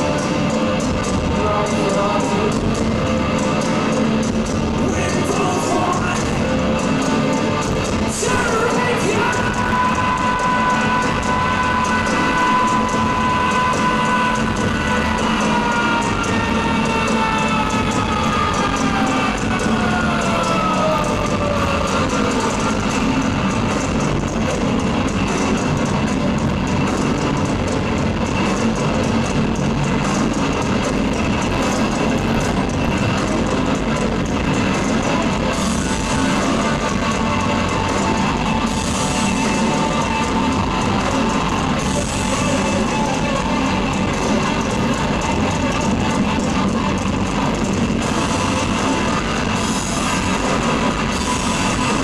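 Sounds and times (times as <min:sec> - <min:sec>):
heavy rock band playing: 0:00.0 - 0:52.0.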